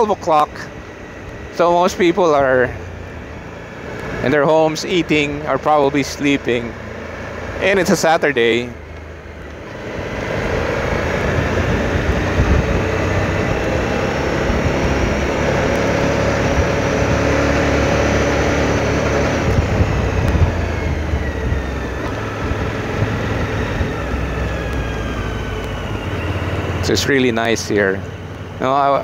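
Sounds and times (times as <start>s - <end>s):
motorcycle engine running: 0.0s - 29.0s
wind noise on microphone: 9.5s - 26.8s.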